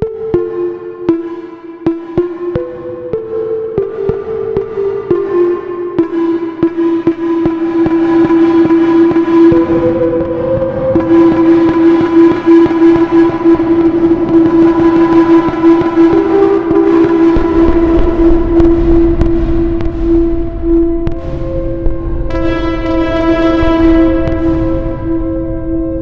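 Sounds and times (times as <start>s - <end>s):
buzzy synthesizer drone: 0.0s - 26.0s
deep bass rumble: 16.9s - 26.0s.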